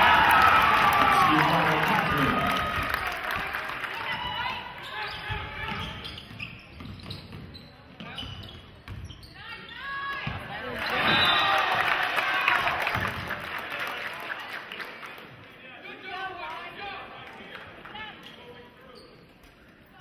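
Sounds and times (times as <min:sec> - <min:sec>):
crowd voices: 0:00.0 - 0:03.6.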